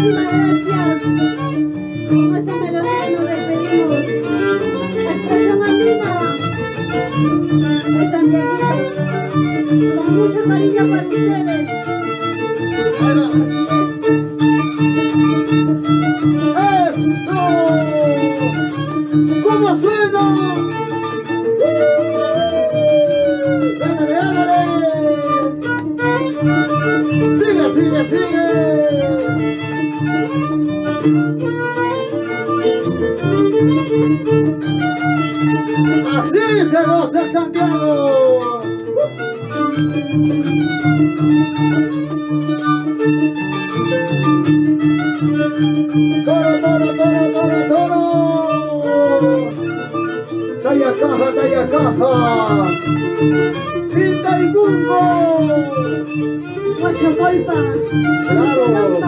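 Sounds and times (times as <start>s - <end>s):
harp accompaniment: 0.0s - 59.0s
violin melody: 0.0s - 59.0s.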